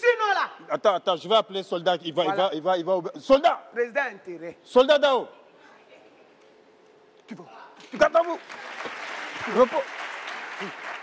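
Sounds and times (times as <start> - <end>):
audience applauding: 8.0 - 11.0.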